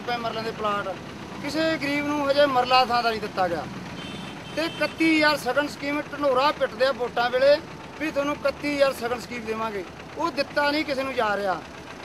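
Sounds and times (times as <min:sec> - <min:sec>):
man speaking into microphones: 0:00.0 - 0:03.7, 0:04.6 - 0:11.6.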